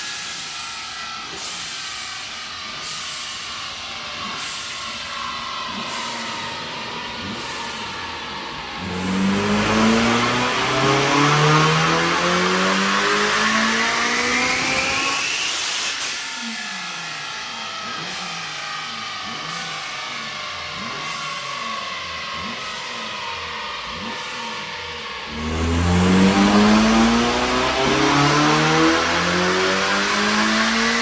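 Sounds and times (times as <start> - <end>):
car engine revving: 0.0 - 31.0
supercharger whine: 0.0 - 31.0.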